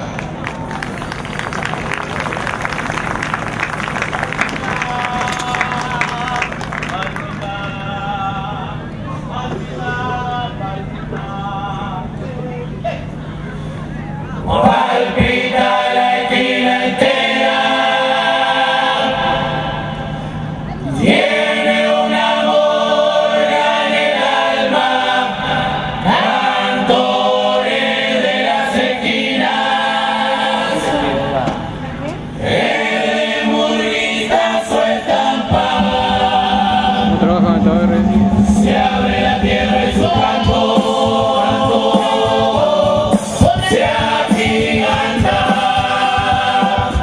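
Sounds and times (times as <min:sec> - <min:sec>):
chorus singing together: 0:04.5 - 0:12.1, 0:14.4 - 0:31.4, 0:32.3 - 0:47.0.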